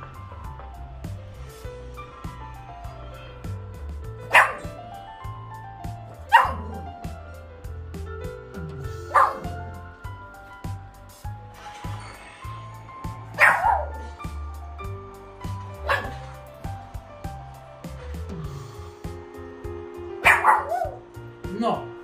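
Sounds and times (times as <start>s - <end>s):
puppy barking in high yips: 4.3s - 4.7s, 6.3s - 6.8s, 9.1s - 9.5s, 13.4s - 14.0s, 15.8s - 16.2s, 20.2s - 21.0s.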